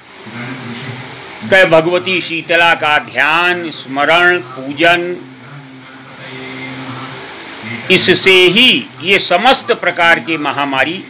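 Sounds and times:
low background hum with hiss: 0.0s - 11.0s
man speaking: 0.4s - 5.2s, 7.9s - 11.0s.

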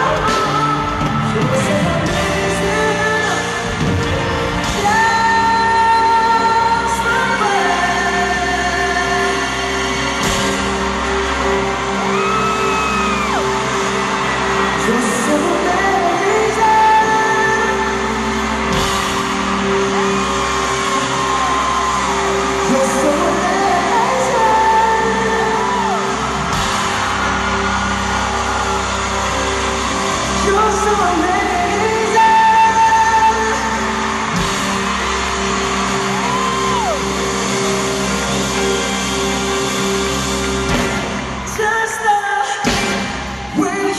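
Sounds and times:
crowd whooping and yelling: 0.0s - 43.9s
pop singer with live band: 0.0s - 43.9s.

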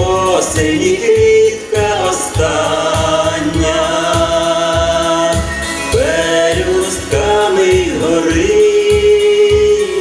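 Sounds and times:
instrumental accompaniment: 0.0s - 10.0s
man and woman singing duet: 0.0s - 10.0s
pulsing bass: 0.0s - 10.0s.

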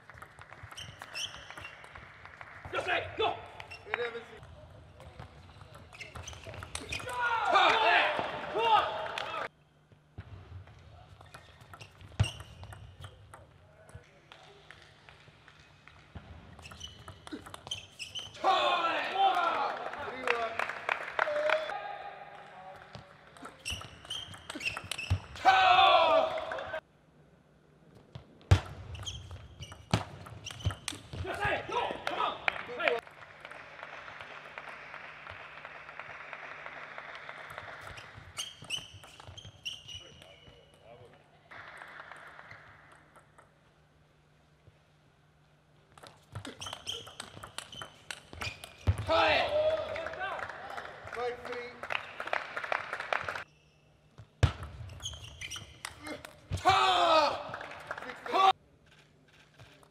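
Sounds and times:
loud shouts: 7.0s - 9.5s, 18.4s - 19.9s, 25.4s - 26.8s, 49.0s - 50.4s, 56.0s - 58.6s.

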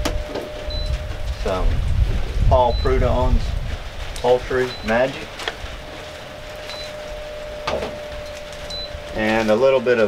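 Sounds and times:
fan humming: 0.0s - 10.0s.

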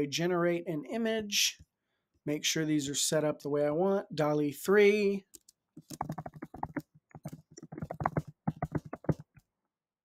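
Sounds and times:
typing on computer keyboard: 5.4s - 9.4s.

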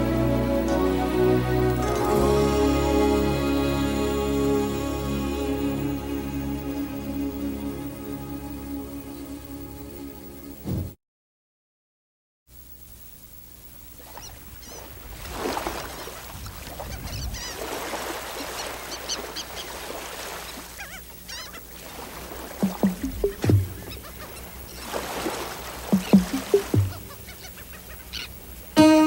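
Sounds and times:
wash of noise: 14.0s - 27.3s
birds calling: 14.1s - 29.0s
low thuds: 22.6s - 24.0s, 25.9s - 27.2s.

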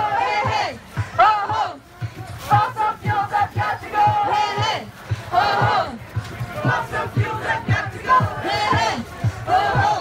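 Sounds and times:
crowd chanting and shouting slogans: 0.0s - 10.0s.

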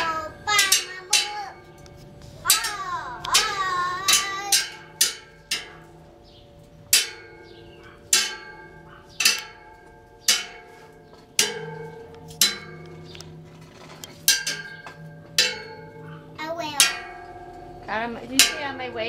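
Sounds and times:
young child's voice: 0.0s - 1.6s, 2.4s - 4.6s, 16.4s - 16.9s
metal railing clanging: 0.0s - 19.0s.

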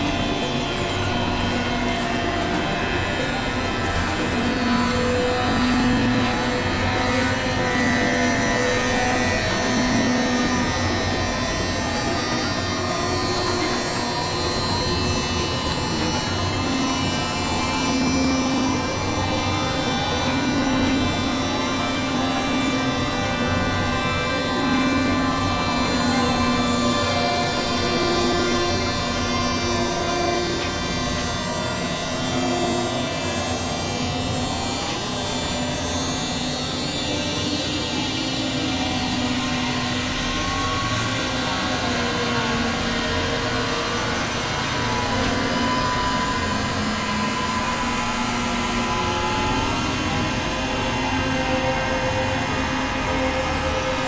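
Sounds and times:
held drone tones: 0.0s - 54.0s.

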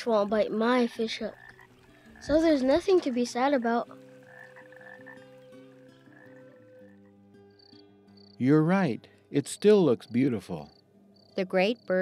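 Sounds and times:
frog croaking: 0.8s - 8.4s, 9.4s - 12.0s.

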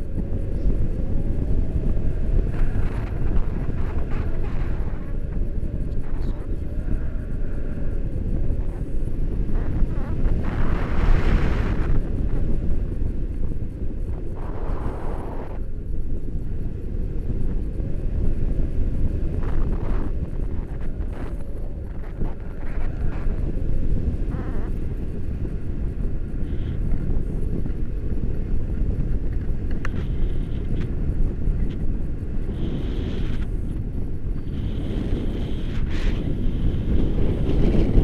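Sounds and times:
wind buffeting microphone: 0.0s - 38.0s.

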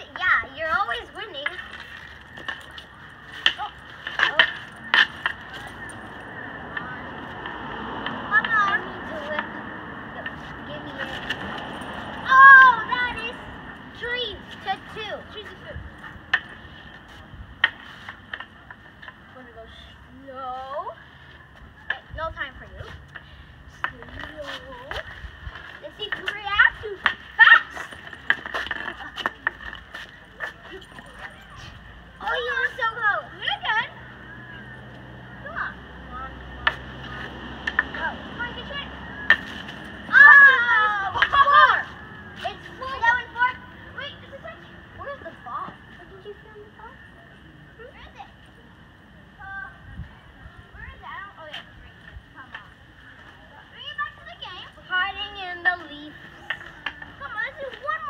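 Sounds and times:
hockey sticks clacking on ball: 25.9s - 30.1s, 36.6s - 38.0s, 39.2s - 39.9s.

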